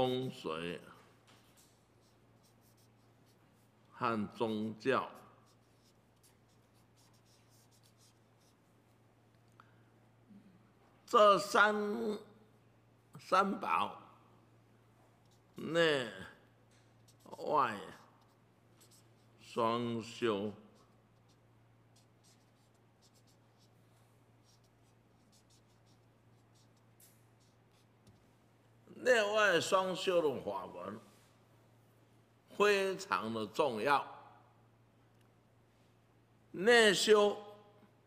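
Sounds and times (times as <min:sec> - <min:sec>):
marker scratching on paper: 0:00.2 - 0:09.0, 0:15.2 - 0:28.3
steady low hum: 0:12.2 - 0:29.3.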